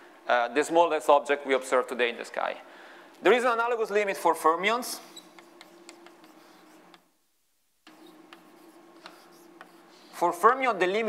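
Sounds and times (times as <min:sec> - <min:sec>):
low room hum: 0:00.0 - 0:11.0
chalk writing on blackboard: 0:05.0 - 0:07.1, 0:07.8 - 0:10.4.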